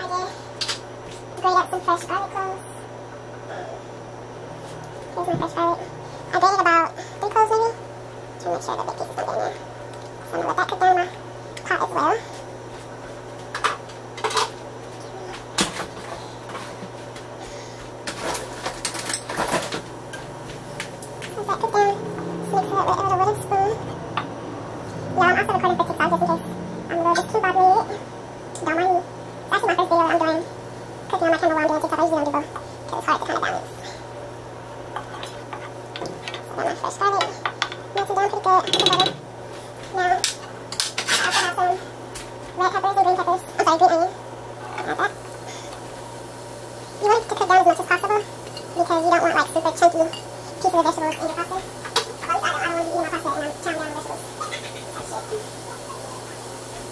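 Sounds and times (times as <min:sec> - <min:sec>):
steady low hum: 0:00.0 - 0:56.8
kitchen items clattering: 0:18.0 - 0:21.8, 0:35.0 - 0:39.3, 0:40.2 - 0:41.8
voices talking: 0:20.4 - 0:34.2.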